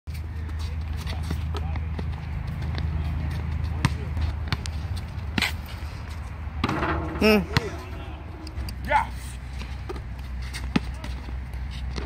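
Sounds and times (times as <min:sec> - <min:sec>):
steady low rumble: 0:06.2 - 0:10.4.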